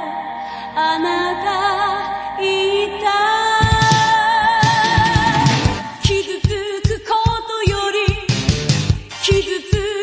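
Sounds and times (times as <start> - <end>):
bass: 3.6 - 7.0, 8.1 - 9.5
drums: 3.6 - 10.0.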